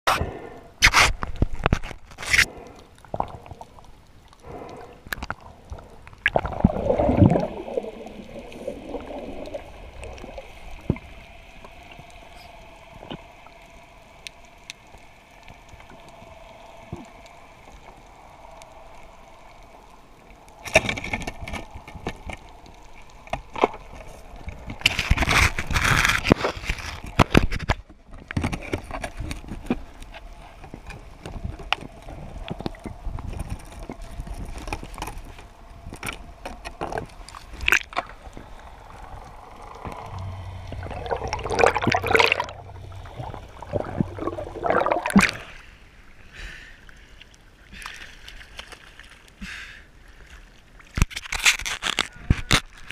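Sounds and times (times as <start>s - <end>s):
clicks and crackles: 0.1s - 45.6s, 50.3s - 52.9s
faint steady tone and hiss: 0.1s - 52.9s
underwater gurgling and bubbling: 2.4s - 27.6s, 28.6s - 45.8s.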